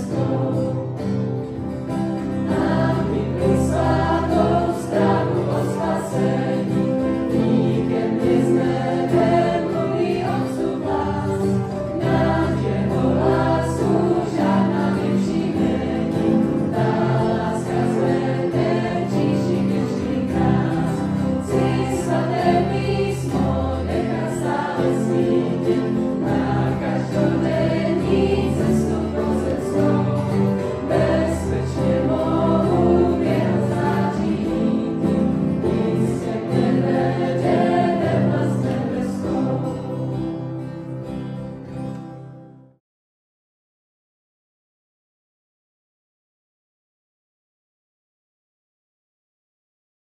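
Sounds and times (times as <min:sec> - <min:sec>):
youth choir singing a hymn: 0:00.0 - 0:01.3, 0:02.2 - 0:40.7.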